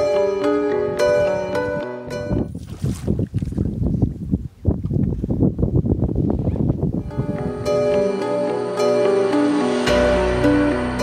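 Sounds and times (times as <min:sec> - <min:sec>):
wind buffeting microphone: 0:00.0 - 0:08.2
water splashing: 0:02.3 - 0:04.0.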